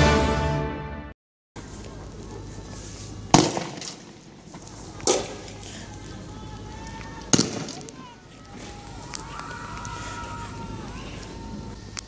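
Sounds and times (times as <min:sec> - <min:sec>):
faint shouting voices: 0:01.6 - 0:03.3, 0:04.5 - 0:12.0.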